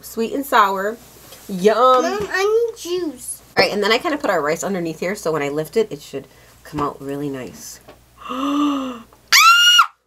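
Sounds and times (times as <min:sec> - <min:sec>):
high-pitched excited squeal: 0:09.3 - 0:10.0.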